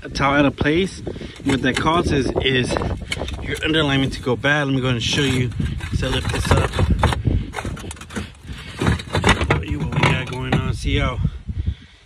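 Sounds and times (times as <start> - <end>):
clay roof tile clinking and scraping: 1.0 - 11.0.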